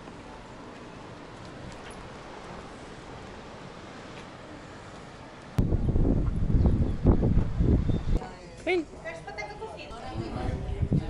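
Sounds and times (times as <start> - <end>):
faint outdoor background noise: 0.0 - 11.0
wind buffeting microphone: 5.5 - 8.4, 9.8 - 11.0.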